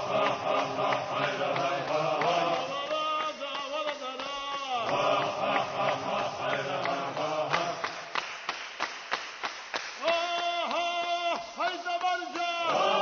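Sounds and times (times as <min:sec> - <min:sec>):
chanted singing: 0:00.0 - 0:08.2, 0:10.0 - 0:13.0.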